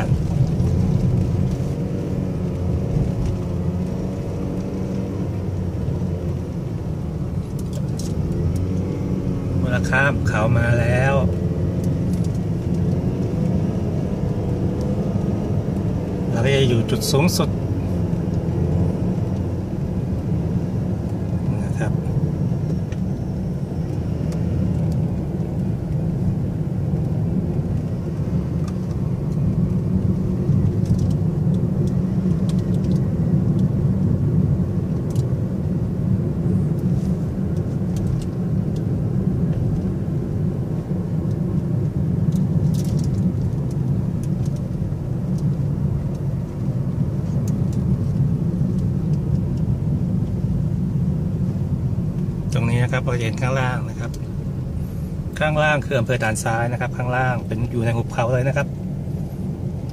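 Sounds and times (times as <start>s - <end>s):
car engine and tyres rumbling: 0.0s - 59.9s.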